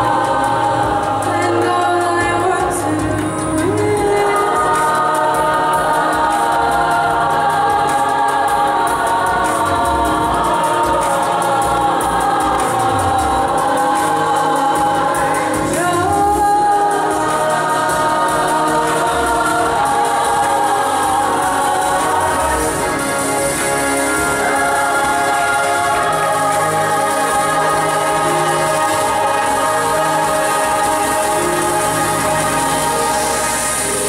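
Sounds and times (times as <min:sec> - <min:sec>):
choir singing in harmony: 0:00.0 - 0:34.0.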